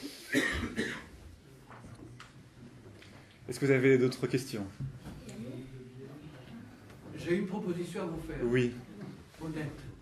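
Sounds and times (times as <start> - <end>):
person coughing: 0.3 - 1.1.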